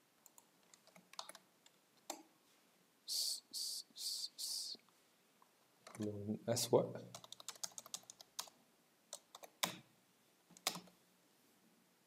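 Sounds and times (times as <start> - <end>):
computer keyboard keys clicking: 0.3 - 1.4, 7.1 - 9.8, 10.6 - 11.0.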